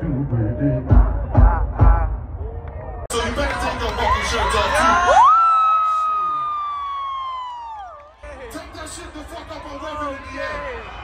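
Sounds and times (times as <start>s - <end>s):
crowd cheering and whooping: 2.4s - 11.0s.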